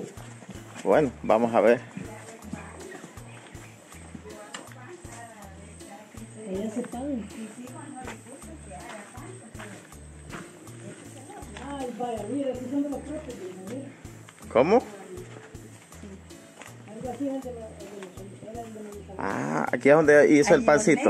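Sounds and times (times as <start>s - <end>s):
background music with bass beat: 0.0s - 21.0s.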